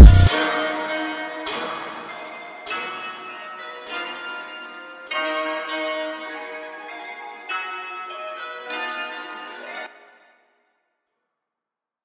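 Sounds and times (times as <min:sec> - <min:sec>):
bell-like instrumental melody: 0:00.0 - 0:09.8.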